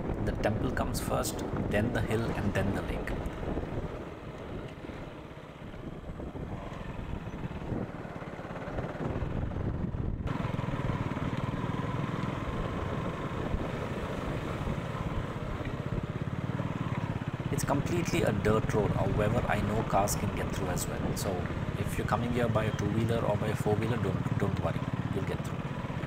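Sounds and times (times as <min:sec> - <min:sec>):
wind noise on microphone: 0:00.0 - 0:10.4
motorcycle engine running: 0:01.4 - 0:26.0.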